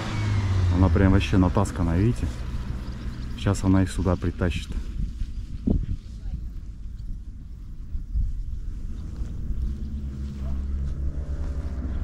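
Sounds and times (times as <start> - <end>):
wind buffeting microphone: 2.0 - 12.0.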